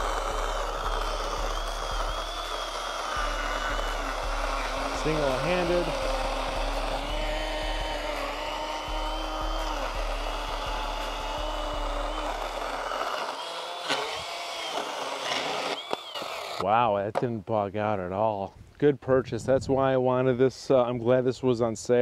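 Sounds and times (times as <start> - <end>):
chainsaw cutting wooden post: 0.0 - 16.6.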